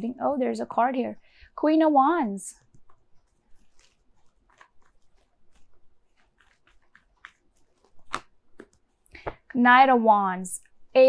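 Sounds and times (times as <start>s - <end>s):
cards clicking and rustling: 2.6s - 9.6s.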